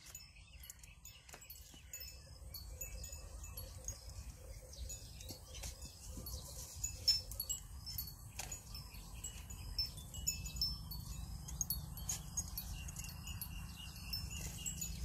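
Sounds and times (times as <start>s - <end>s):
high tinkling chime notes: 0.0s - 15.0s.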